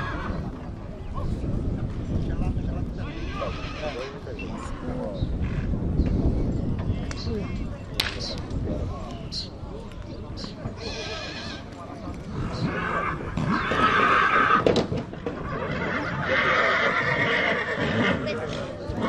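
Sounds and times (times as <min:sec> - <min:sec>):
horses whinnying: 0:00.0 - 0:00.5, 0:03.1 - 0:05.7, 0:10.8 - 0:11.7, 0:12.3 - 0:19.0.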